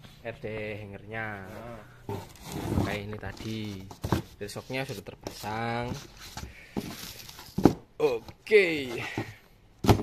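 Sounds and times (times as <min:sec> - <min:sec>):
knocks in cardboard box: 0:09.2 - 0:10.0.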